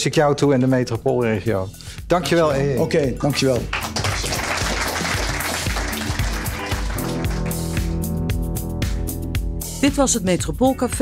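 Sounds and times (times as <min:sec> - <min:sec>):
audience applause: 0:03.6 - 0:08.0
music with bass and beat: 0:05.6 - 0:11.0.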